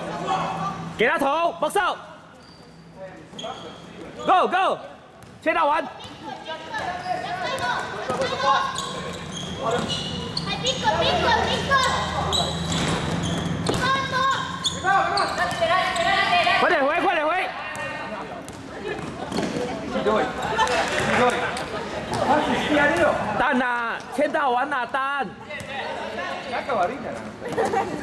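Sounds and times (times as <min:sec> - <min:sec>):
players calling out: 0:05.6 - 0:28.0
basketball bouncing on wooden court: 0:12.7 - 0:14.0.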